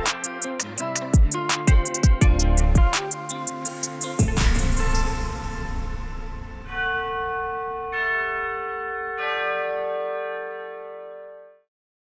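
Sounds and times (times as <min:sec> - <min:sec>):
background music: 0:00.0 - 0:07.5
bell chimes: 0:04.1 - 0:11.7.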